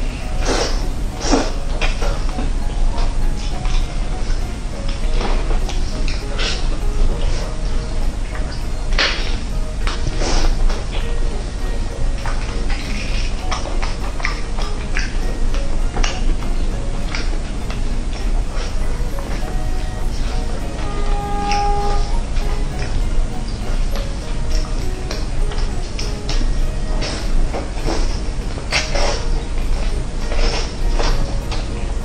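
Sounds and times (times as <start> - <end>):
background music: 0.0 - 32.0
chewing and smacking: 12.2 - 19.4.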